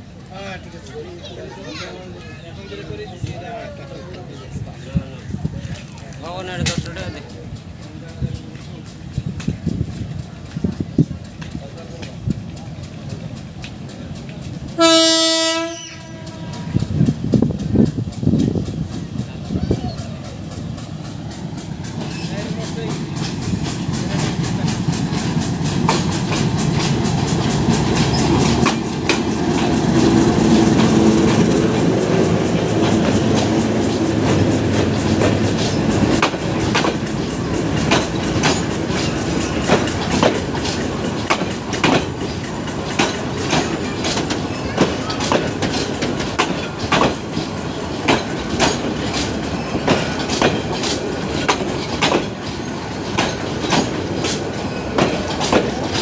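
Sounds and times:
diesel train approaching: 0.0 - 56.0
murmur of voices: 0.0 - 56.0
train wheels knocking and clattering: 2.7 - 56.0.

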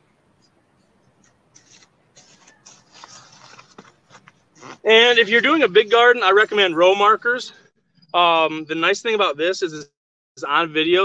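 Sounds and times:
soil scraping and rustling: 1.6 - 6.6
man speaking: 4.8 - 11.0.

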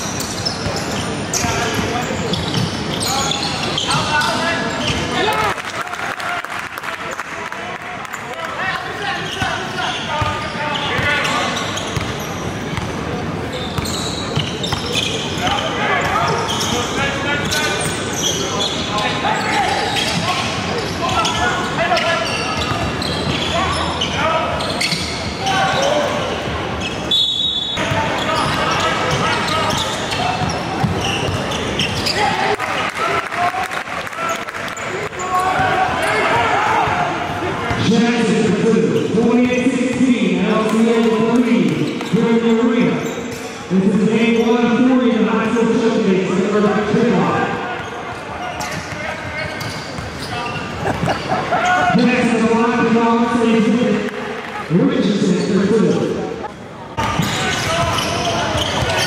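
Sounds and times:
echoing voices in a hall: 0.0 - 59.0.

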